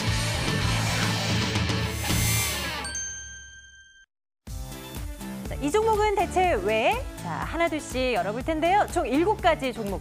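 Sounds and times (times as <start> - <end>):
bright bell-like ding: 2.8 - 4.1.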